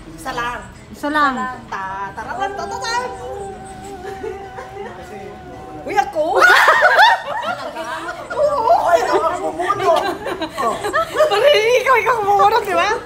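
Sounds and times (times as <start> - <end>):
people exclaiming excitedly: 2.2 - 10.2
group laughing loudly: 2.8 - 11.8.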